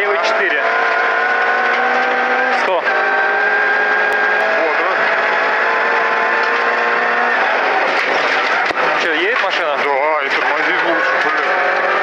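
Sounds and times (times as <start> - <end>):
car engine at high revs: 0.0 - 12.0.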